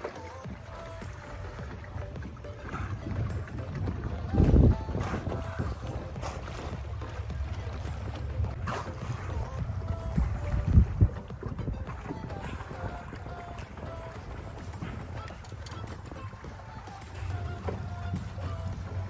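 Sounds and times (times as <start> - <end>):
steady low rumble: 0.5 - 19.0
wind buffeting microphone: 0.5 - 19.0.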